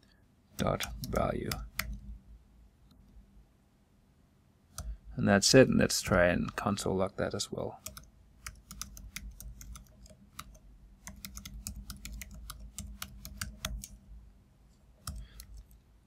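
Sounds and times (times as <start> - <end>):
computer keyboard typing: 0.6 - 2.1, 7.8 - 14.0, 15.0 - 15.8.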